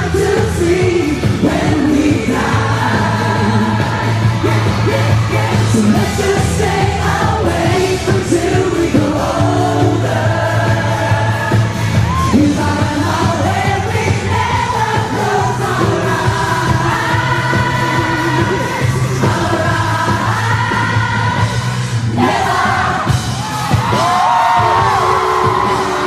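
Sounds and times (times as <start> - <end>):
man singing pop song: 0.0 - 21.5
band playing: 0.0 - 26.0.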